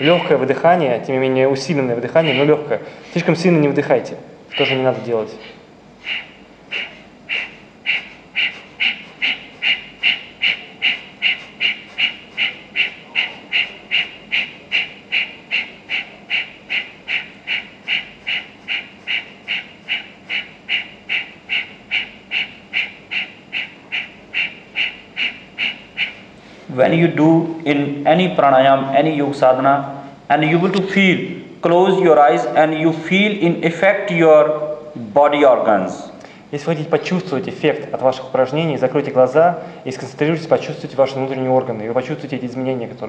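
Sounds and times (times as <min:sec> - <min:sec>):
sharp forced nasal exhalations: 0:05.4 - 0:10.2, 0:10.9 - 0:14.2.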